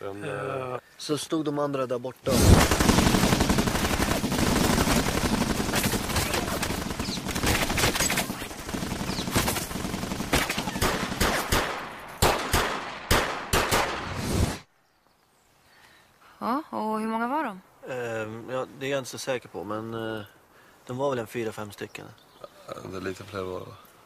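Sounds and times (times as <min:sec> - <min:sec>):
automatic gunfire: 0:02.3 - 0:14.1.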